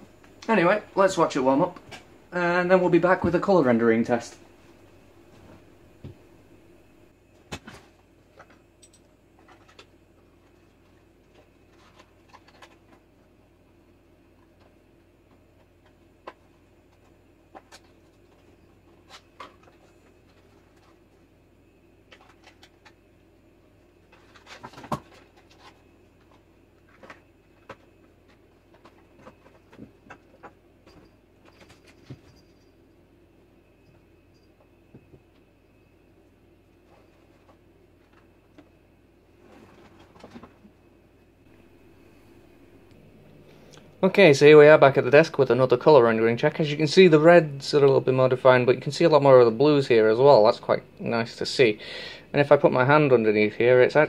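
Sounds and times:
faint electrical hum: 0:00.0 - 0:54.0.

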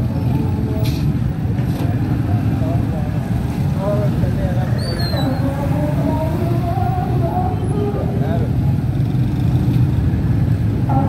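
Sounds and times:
motorcycle and vehicle traffic rumble: 0:00.0 - 0:11.0
passer-by's voice: 0:01.8 - 0:08.8.

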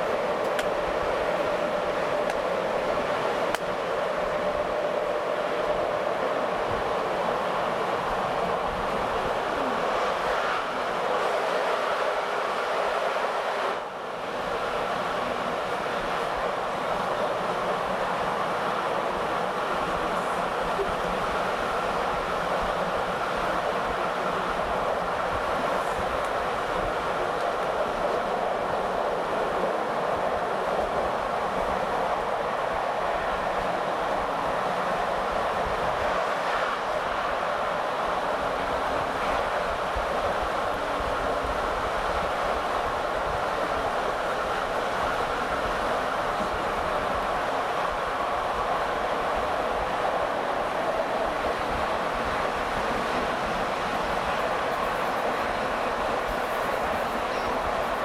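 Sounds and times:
train wheels on rails: 0:00.0 - 0:58.0.

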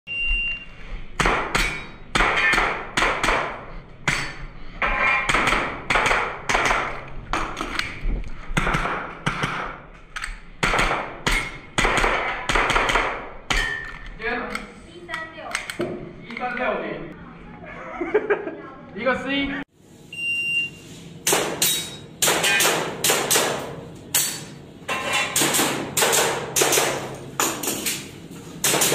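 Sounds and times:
shot timer beep: 0:00.1 - 0:00.7, 0:20.2 - 0:20.8
airsoft pistol shots: 0:10.6 - 0:13.7.

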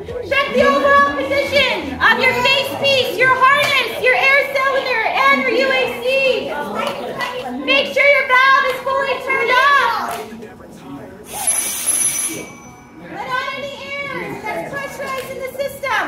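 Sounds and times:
children chattering: 0:00.0 - 0:10.1, 0:13.0 - 0:16.0
compressed air hiss with whistle: 0:11.3 - 0:12.6.

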